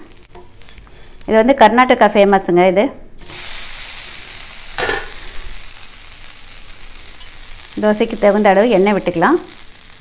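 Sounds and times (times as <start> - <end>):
woman speaking: 1.3 - 3.0, 7.8 - 9.5
food sizzling on a griddle: 3.2 - 10.0.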